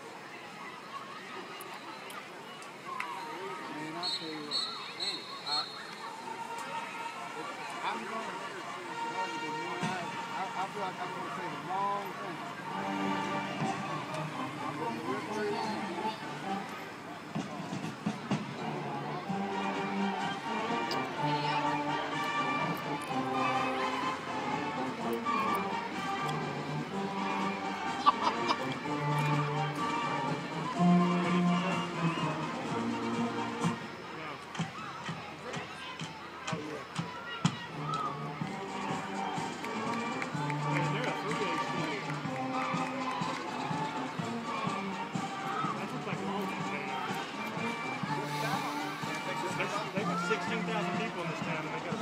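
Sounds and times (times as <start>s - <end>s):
spectators talking: 0.0s - 52.0s
marching band playing: 3.6s - 52.0s.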